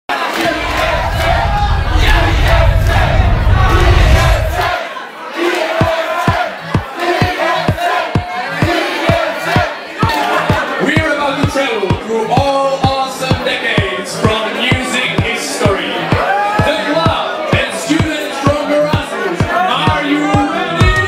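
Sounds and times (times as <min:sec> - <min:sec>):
crowd shouting and cheering: 0:00.1 - 0:21.0
loud dance music: 0:00.3 - 0:04.9, 0:05.5 - 0:21.0
deep heavy bass: 0:00.4 - 0:04.8
steady kick-drum beat: 0:00.4 - 0:04.8, 0:05.7 - 0:09.8, 0:10.4 - 0:21.0.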